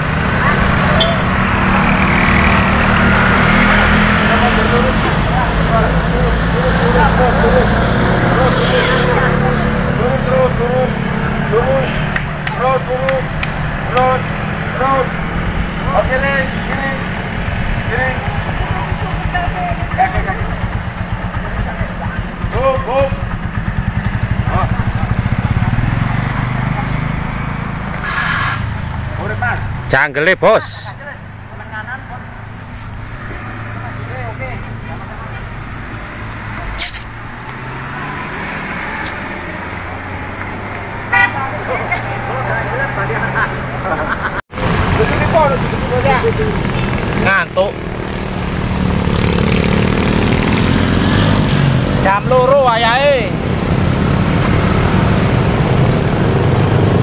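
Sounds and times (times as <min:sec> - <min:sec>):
people calling out: 0:00.0 - 0:27.7, 0:38.7 - 0:44.4
vehicle engines rumbling: 0:00.0 - 0:57.0.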